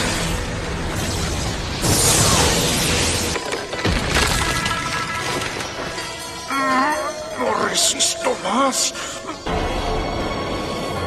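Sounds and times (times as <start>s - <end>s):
background music: 0.0s - 11.0s
rock cracking and breaking: 3.4s - 6.1s.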